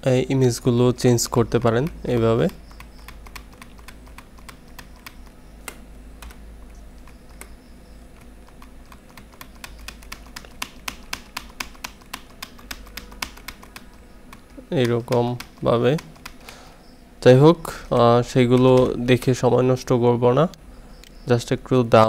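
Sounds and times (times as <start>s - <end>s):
faint low hum: 0.0s - 22.0s
keyboard and mouse clicking: 1.2s - 16.6s, 17.8s - 19.4s.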